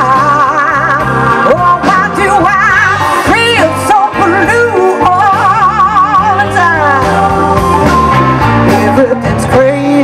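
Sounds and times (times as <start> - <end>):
blues band playing: 0.0 - 10.0
woman singing wordless notes: 0.0 - 10.0.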